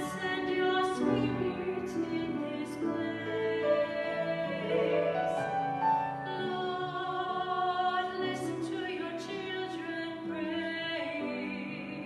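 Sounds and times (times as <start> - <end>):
classical-style singing: 0.0 - 12.0.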